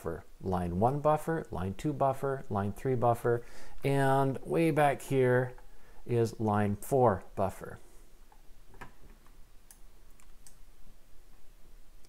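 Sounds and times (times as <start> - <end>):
computer mouse clicks: 8.3 - 10.6.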